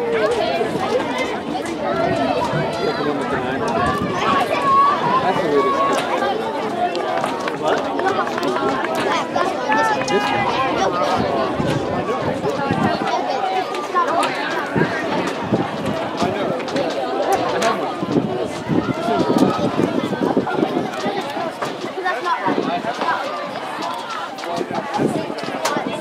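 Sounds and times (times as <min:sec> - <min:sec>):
spectators talking: 0:00.0 - 0:26.0.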